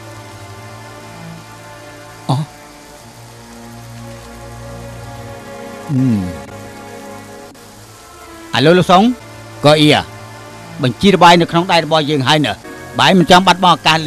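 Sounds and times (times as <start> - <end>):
light hiss: 0.0 - 14.0
soft drama background score: 0.0 - 14.0.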